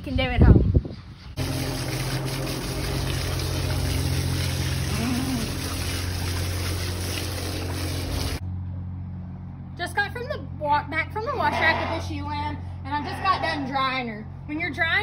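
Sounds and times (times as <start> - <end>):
hose water spraying and splashing: 1.4 - 8.4.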